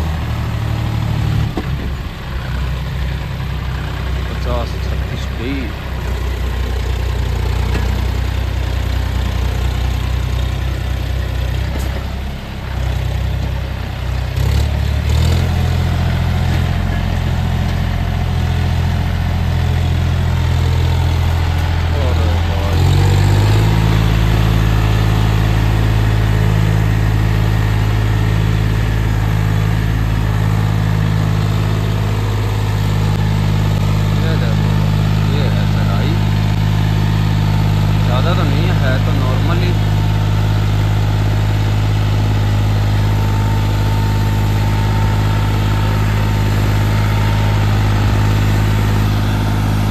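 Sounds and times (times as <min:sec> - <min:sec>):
tractor diesel engine under load: 0:00.0 - 0:49.9.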